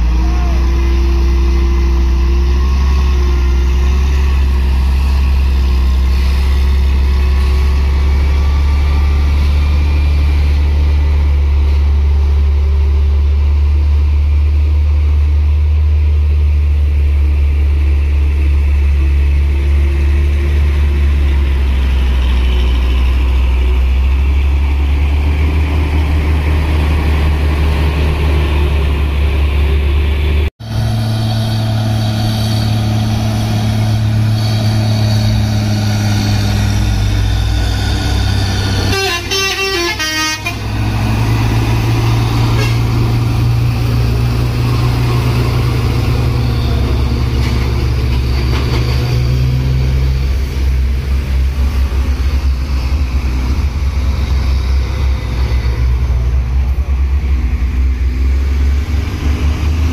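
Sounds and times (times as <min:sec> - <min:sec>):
diesel truck engines droning: 0:00.0 - 0:59.9
truck horn tooting: 0:38.8 - 0:41.2, 0:42.4 - 0:43.1.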